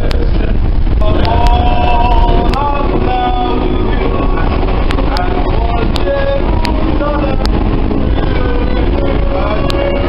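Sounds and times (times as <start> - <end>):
subway train rumbling: 0.0 - 10.0
voices singing: 1.0 - 10.0.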